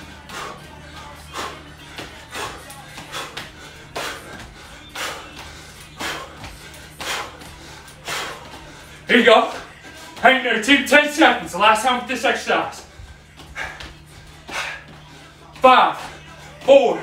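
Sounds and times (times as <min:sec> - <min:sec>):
quiet background music: 0:00.0 - 0:17.0.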